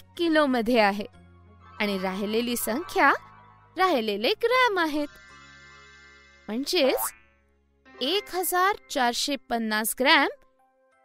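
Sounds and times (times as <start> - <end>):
cartoon sound effect: 6.8 - 7.2.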